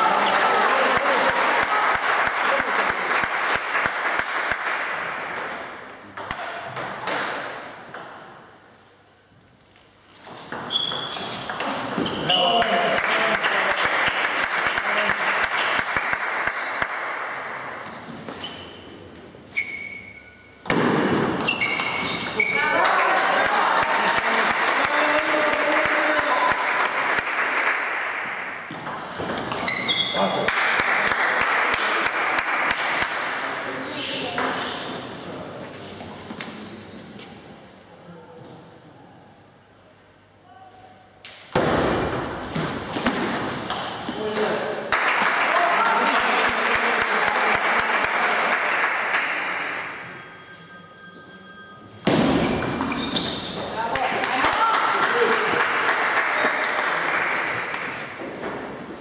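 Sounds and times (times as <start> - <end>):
voices in a large hall: 0.0 - 7.9, 11.5 - 20.2, 21.3 - 59.0.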